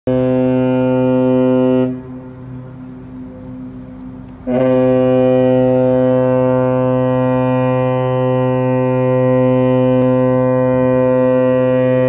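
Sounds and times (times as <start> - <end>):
ship horn long blast: 0.1 - 12.0.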